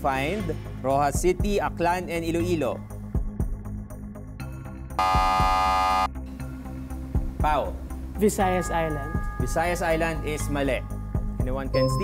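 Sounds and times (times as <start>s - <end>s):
background music with steady beat: 0.0s - 12.0s
game-show buzzer tone: 5.0s - 6.1s.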